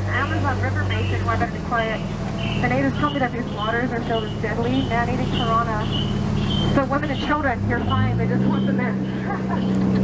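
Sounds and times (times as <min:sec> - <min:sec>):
boat motor humming: 0:00.0 - 0:10.0
people talking: 0:00.0 - 0:10.0.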